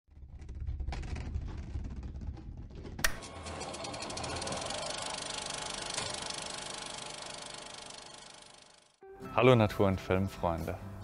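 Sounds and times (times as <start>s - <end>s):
film camera running: 3.2s - 9.0s.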